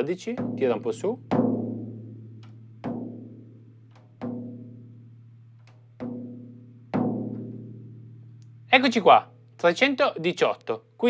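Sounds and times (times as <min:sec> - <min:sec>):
drumstick striking tom drumhead: 0:00.0 - 0:08.8
light tick: 0:08.4 - 0:08.6.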